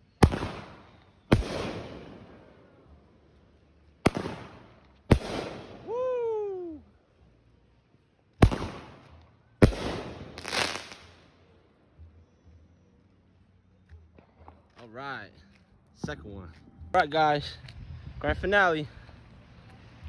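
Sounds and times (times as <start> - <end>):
firework bangs with echo: 0.2 - 2.3, 4.0 - 5.9, 8.4 - 11.1
person whooping: 5.8 - 6.9.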